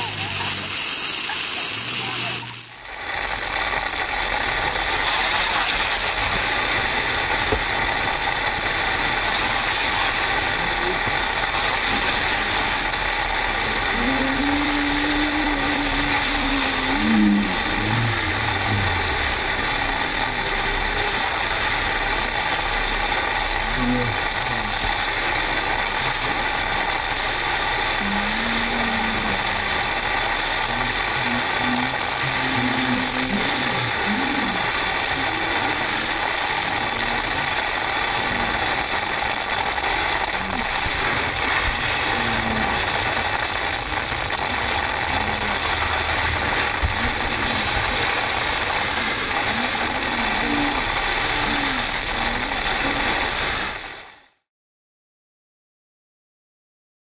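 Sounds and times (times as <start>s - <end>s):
water rushing down slide: 0.0s - 54.3s.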